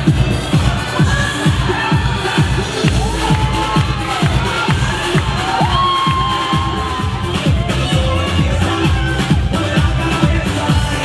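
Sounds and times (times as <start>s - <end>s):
crowd noise: 0.0s - 11.0s
electronic dance music: 0.0s - 11.0s.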